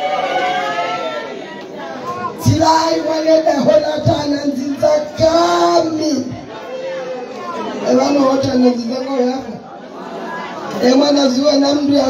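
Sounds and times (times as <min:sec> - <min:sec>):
room chatter: 0:00.0 - 0:12.0.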